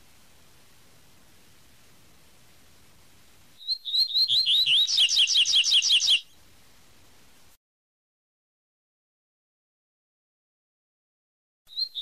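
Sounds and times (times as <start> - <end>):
bird singing whistled notes: 3.6 - 6.4, 11.7 - 12.0.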